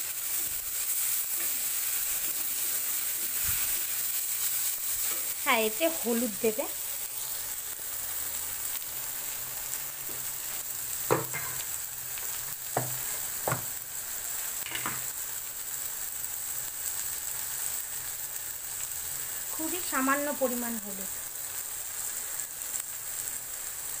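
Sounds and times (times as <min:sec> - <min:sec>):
vegetables sizzling in hot oil: 0:00.0 - 0:24.0
spatula scraping a pan: 0:00.2 - 0:05.4.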